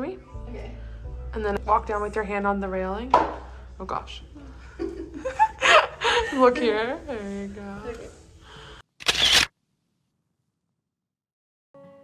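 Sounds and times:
camera shutter: 9.0 - 9.5.

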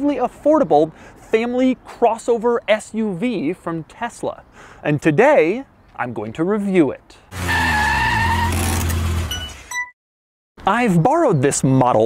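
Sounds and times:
car engine rumble: 7.3 - 9.7.

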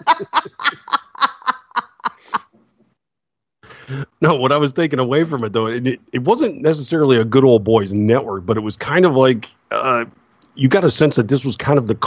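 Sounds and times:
person laughing breathily: 0.0 - 2.6.

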